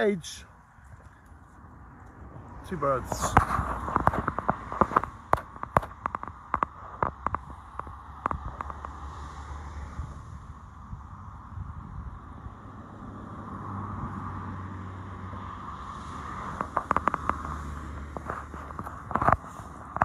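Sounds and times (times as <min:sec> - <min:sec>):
distant road traffic hum: 0:00.0 - 0:20.0.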